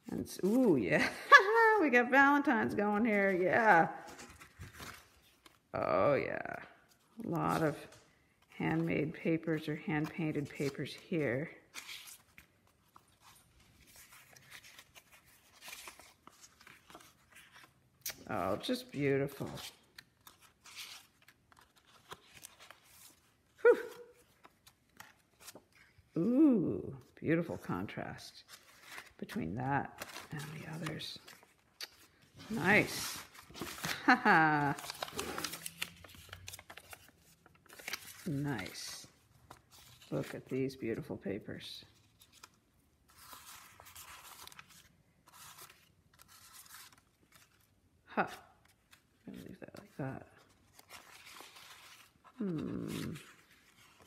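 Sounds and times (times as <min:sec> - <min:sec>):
paper rustling and crinkling: 0:00.0 - 0:05.8, 0:06.7 - 0:26.2, 0:27.0 - 0:54.0.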